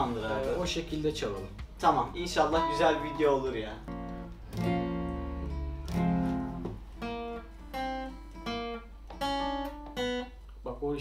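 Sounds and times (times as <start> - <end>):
acoustic guitar strummed and picked: 1.4 - 10.6.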